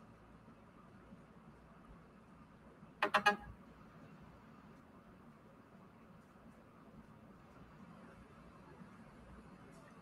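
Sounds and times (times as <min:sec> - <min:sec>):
electronic notification beeps: 0:03.0 - 0:03.5.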